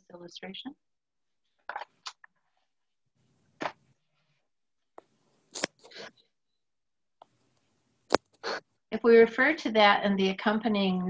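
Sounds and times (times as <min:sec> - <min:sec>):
sharp crackle: 0:05.5 - 0:06.1.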